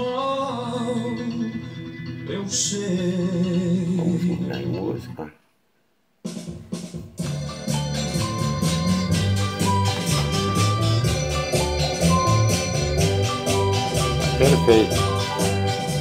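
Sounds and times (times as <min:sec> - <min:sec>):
music with steady beat on speakers: 0:00.0 - 0:04.8, 0:06.2 - 0:16.0.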